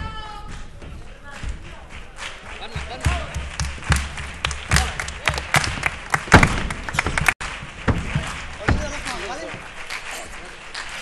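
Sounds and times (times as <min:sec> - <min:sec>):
thumps on wooden stage: 0:00.0 - 0:09.8.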